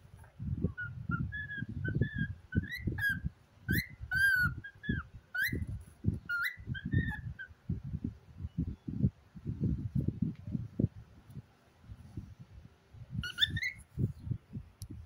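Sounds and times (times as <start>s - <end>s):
cockatiel whistling and chattering: 0.6s - 7.5s, 13.2s - 13.8s.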